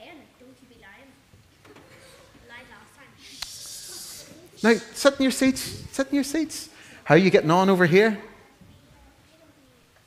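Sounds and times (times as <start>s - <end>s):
child whispering: 1.9s - 5.0s.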